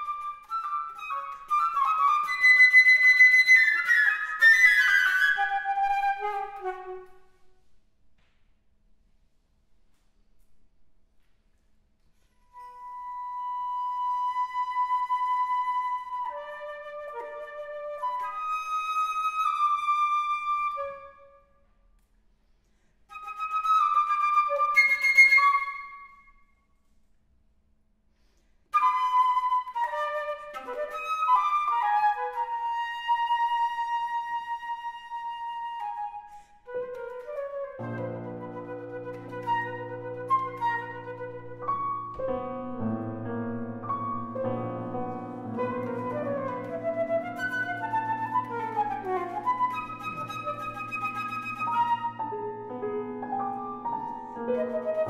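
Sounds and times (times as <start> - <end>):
flute playing: 0.0 - 7.7, 12.5 - 21.5, 23.1 - 26.3, 28.7 - 42.8, 43.8 - 55.0
piano accompaniment: 36.9 - 55.0.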